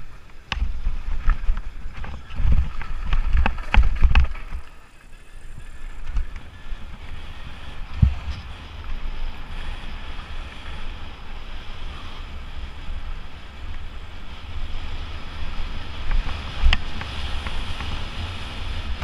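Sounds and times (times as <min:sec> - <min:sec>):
wind on microphone: 0:00.0 - 0:19.0
mountain bike rattling and knocking: 0:00.5 - 0:04.6.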